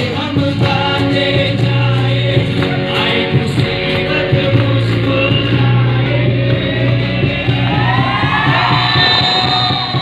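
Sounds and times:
loud backing music: 0.0s - 10.0s.

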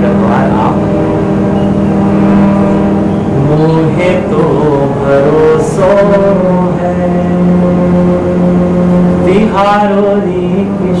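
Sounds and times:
harmonium sustained chord: 0.0s - 11.0s.

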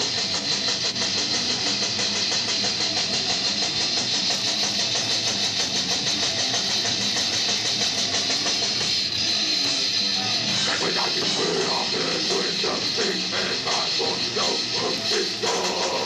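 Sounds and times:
distorted electric guitars: 0.0s - 16.0s
fast drumming: 0.0s - 16.0s.

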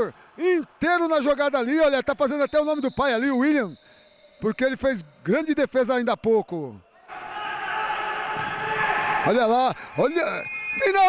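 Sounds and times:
voices echoing in gym: 0.0s - 11.0s.

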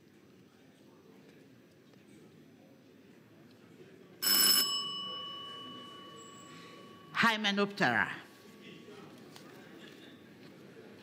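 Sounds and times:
small metal bell ringing: 4.3s - 7.5s.

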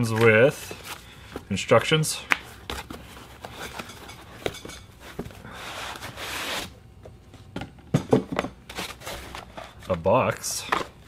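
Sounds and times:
cardboard scraping rustle: 8.7s - 9.9s.

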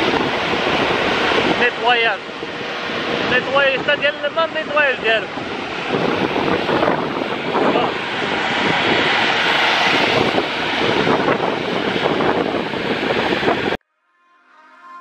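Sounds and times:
water churning: 0.0s - 13.7s
wind buffeting microphone: 0.0s - 13.8s
boat motor running: 0.0s - 15.0s.

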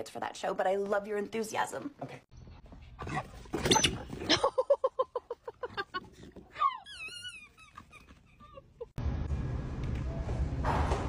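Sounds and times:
dog whining: 3.0s - 4.4s, 6.5s - 8.8s
dogs yipping: 3.0s - 4.5s, 6.5s - 8.9s.

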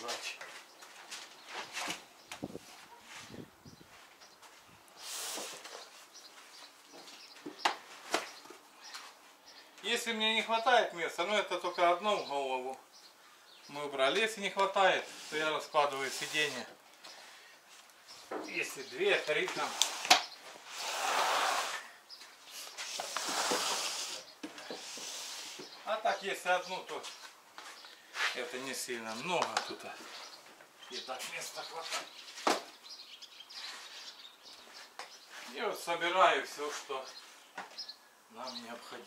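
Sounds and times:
items scraping on cargo floor: 19.5s - 22.0s, 22.8s - 25.8s.

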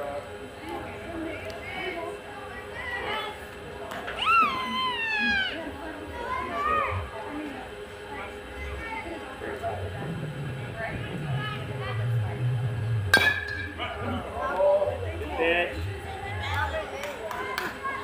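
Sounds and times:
spectators shouting and talking: 0.0s - 18.0s
metal bat hitting ball: 13.1s - 13.8s.

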